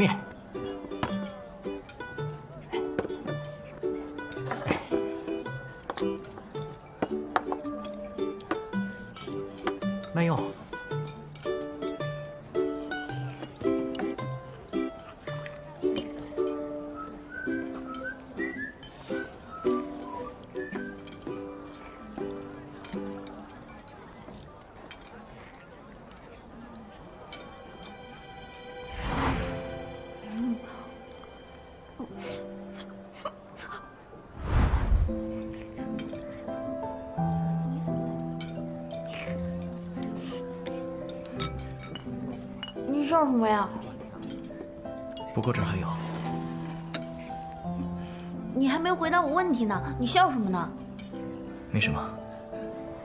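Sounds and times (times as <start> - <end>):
soft background music: 0.0 - 53.0
chopsticks clinking against bowl: 0.5 - 19.2, 19.9 - 28.6, 35.3 - 37.0, 37.7 - 43.0, 43.8 - 46.2
sliding whistle-like melody: 16.6 - 21.4.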